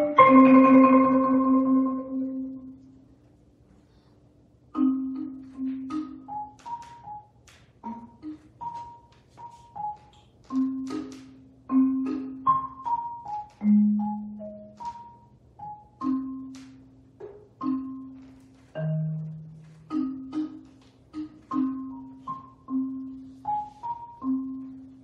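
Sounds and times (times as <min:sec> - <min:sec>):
prepared marimba played with mallets: 0:04.7 - 0:06.8, 0:10.5 - 0:25.0.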